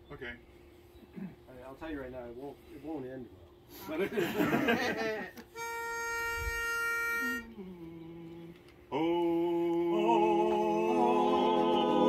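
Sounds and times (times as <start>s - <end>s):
pitch pipe reedy note: 5.6s - 7.9s.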